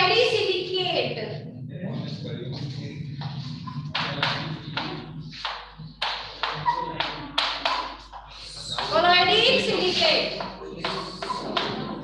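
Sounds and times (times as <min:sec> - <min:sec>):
chalk tapping and scraping on blackboard: 0:03.2 - 0:11.8.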